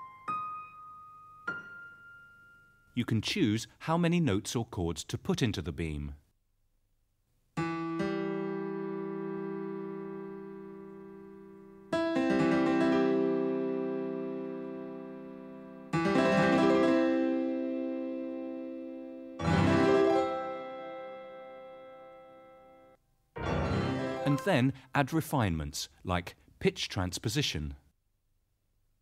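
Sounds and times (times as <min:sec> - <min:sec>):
electronic keyboard chords: 0:07.6 - 0:24.6.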